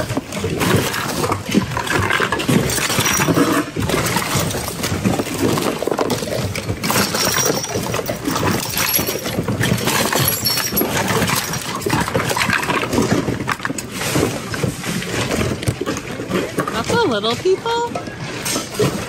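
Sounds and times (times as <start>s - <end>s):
items clattering and clinking: 0.0s - 19.0s.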